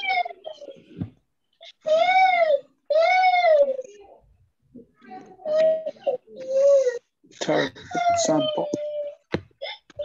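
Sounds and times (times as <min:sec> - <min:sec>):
baby crying: 0:00.0 - 0:00.8.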